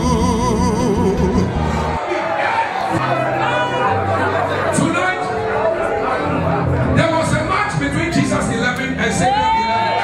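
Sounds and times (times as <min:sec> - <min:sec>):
held bass notes: 0:00.0 - 0:02.0.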